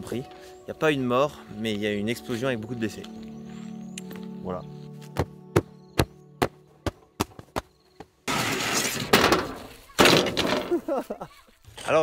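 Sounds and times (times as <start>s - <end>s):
background music with ticking beat: 0.0s - 7.7s.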